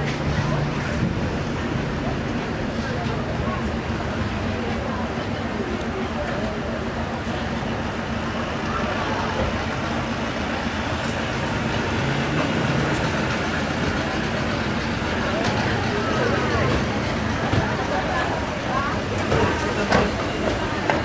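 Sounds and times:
people chatting: 0.0 - 21.0
vehicle engine humming: 0.0 - 21.0.

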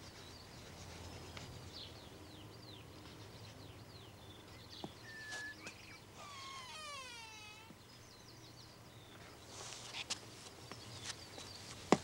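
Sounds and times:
faint bird chirps: 0.0 - 9.7
wooden door creaking open: 6.3 - 7.7.

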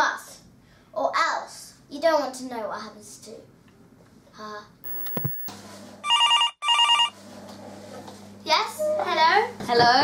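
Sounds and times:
telephone ringing: 4.8 - 7.1.

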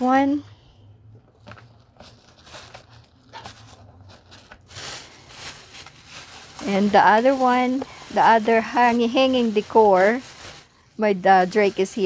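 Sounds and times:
plastic bag rustling: 1.2 - 12.0.

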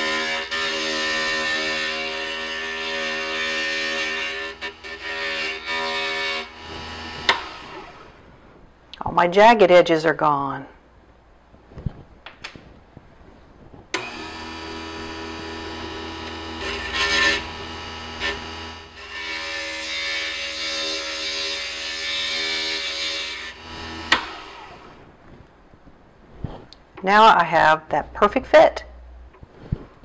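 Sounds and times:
glass grinder motor humming: 14.0 - 25.0
glass grinding on bit: 16.5 - 17.6.

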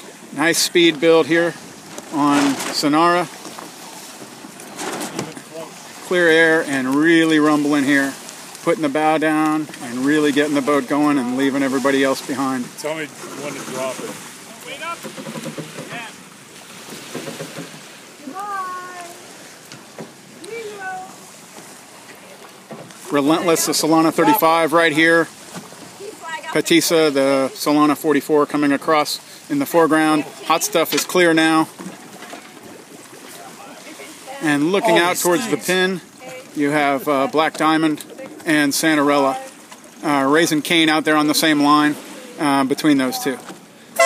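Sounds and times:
water washing around boat: 0.0 - 44.0.

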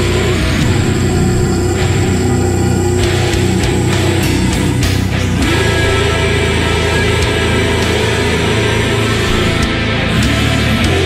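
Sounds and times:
distorted doom metal guitars and bass: 0.0 - 11.0.

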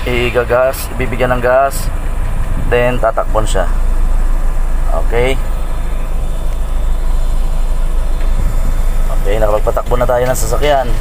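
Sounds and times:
van engine and road noise: 0.0 - 11.0.

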